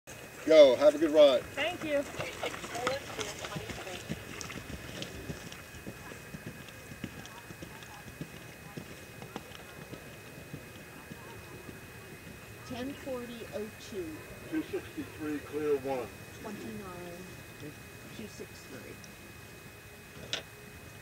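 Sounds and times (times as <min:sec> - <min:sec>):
horse hoofbeats on grass: 0:01.7 - 0:13.6.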